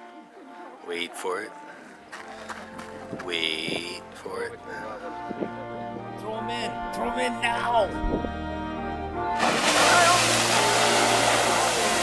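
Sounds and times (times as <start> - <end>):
geyser erupting: 9.4 - 12.0.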